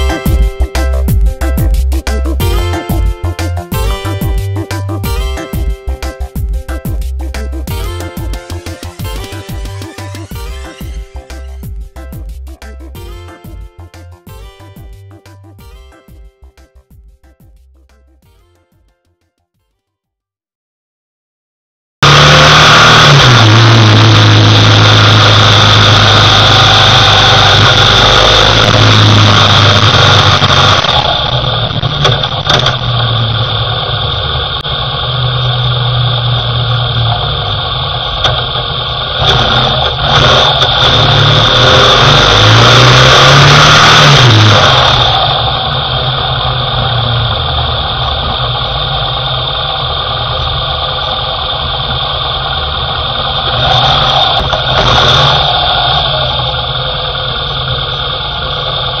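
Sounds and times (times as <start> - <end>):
motorcycle engine: 0.0 - 15.1, 22.0 - 59.0
thin high whine: 7.7 - 12.0, 22.0 - 59.0.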